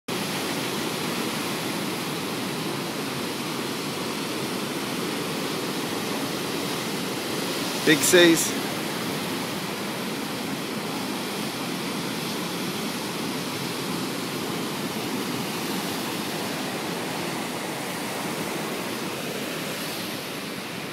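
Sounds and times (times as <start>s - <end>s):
surf breaking over rocks: 1.2s - 20.2s.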